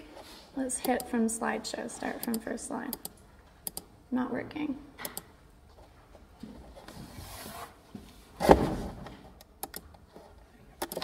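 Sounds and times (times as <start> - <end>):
keyboard or mouse clicks: 2.2 - 3.9, 9.4 - 10.0, 10.8 - 11.0.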